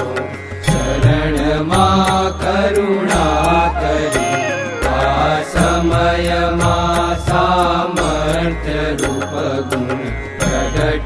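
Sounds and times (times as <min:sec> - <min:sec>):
devotional hymn singing: 0:00.8 - 0:11.0
low drone: 0:03.0 - 0:07.3.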